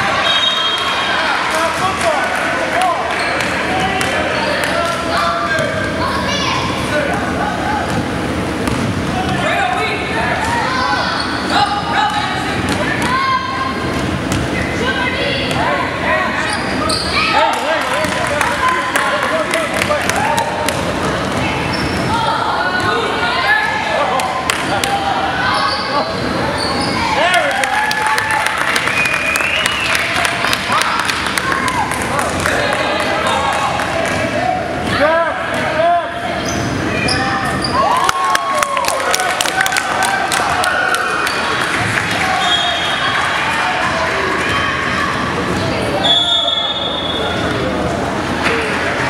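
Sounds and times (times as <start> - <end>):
players' voices: 0.0 - 49.0
sneaker squeaks: 11.0 - 11.6, 16.4 - 17.4, 21.6 - 22.2, 25.4 - 27.2, 36.4 - 37.8.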